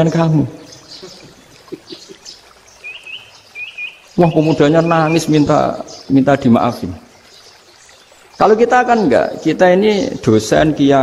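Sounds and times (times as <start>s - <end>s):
small bird chirping: 0.6s - 6.2s.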